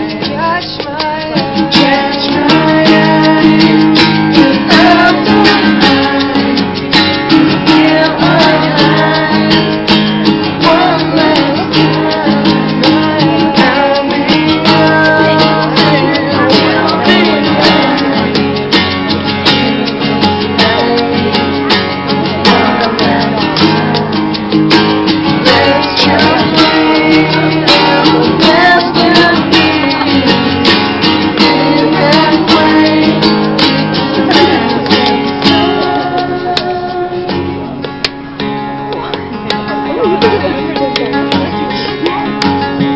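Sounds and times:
man singing: 0.0 - 38.0
hand shaker: 0.0 - 38.3
acoustic guitars strumming: 0.0 - 42.9.

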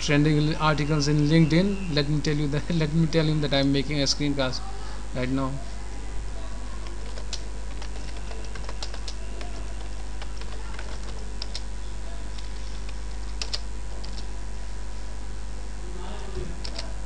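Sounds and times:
steady low hum: 0.0 - 17.0
keyboard typing clicks: 6.8 - 11.7, 12.3 - 14.3, 16.6 - 16.9.

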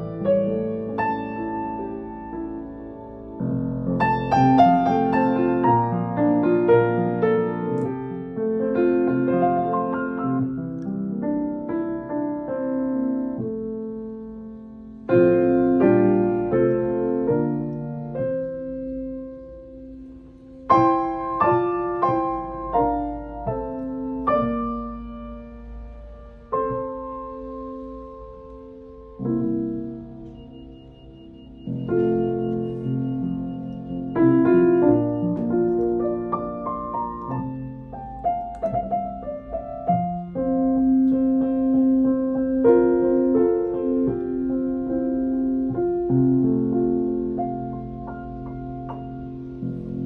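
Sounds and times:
piano chords: 0.0 - 50.0.

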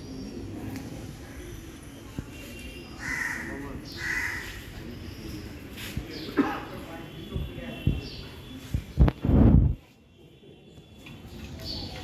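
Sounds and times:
crow cawing: 3.0 - 4.6.

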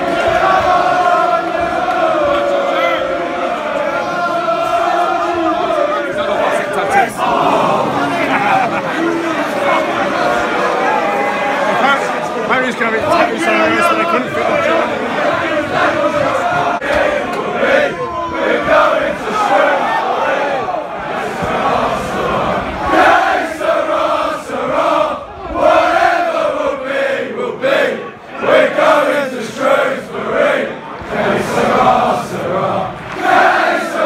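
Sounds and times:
football crowd chanting and singing: 0.0 - 34.0.

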